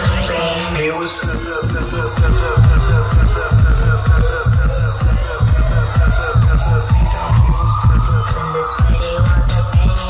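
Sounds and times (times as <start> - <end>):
electronic dance music: 0.0 - 10.0
heavy kick drum: 1.2 - 10.0.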